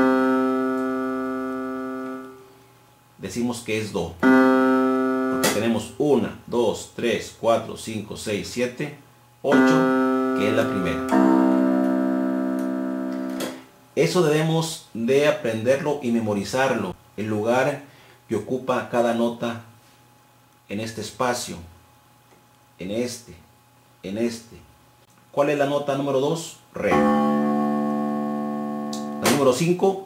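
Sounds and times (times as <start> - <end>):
electronic keyboard piano note: 0.0 - 2.4, 4.2 - 5.9, 9.5 - 13.6, 26.8 - 29.7.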